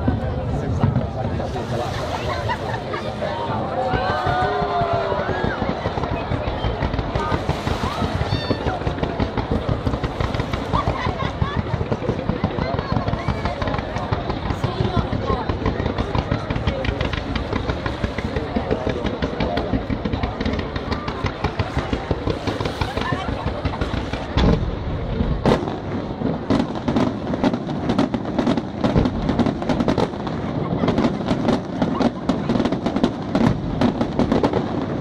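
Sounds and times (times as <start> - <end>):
sharp firework bangs: 0.0 - 35.0.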